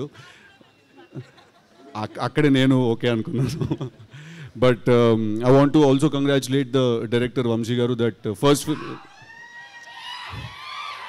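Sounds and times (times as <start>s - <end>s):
faint crowd cheering and whooping: 8.7s - 11.0s.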